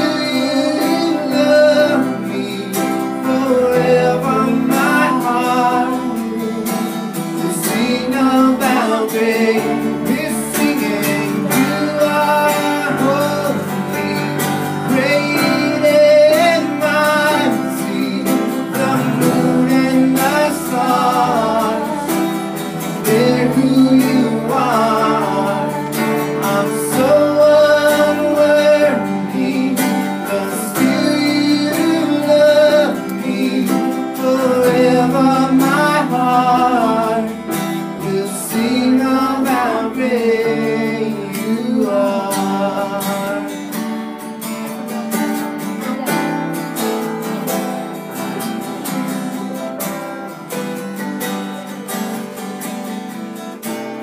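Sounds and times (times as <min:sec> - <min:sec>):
people singing: 0:00.0 - 0:43.8
acoustic guitar strumming: 0:00.0 - 0:54.0.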